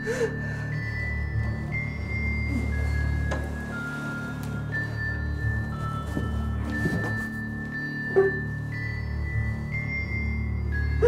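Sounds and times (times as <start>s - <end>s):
low sustained drones: 0.0s - 11.0s.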